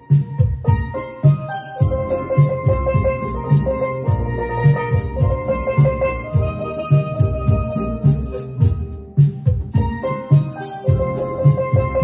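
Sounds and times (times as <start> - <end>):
low beat: 0.0 - 12.0
steel pan melody: 0.0 - 12.0
hand shakers: 0.9 - 8.8, 10.0 - 12.0.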